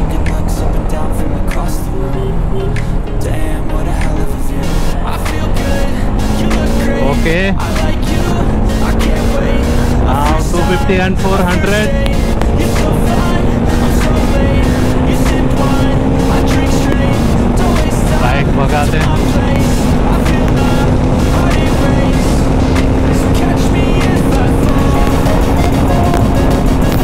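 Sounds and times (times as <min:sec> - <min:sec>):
background music: 0:00.0 - 0:27.0
motorcycle engine droning: 0:00.0 - 0:27.0.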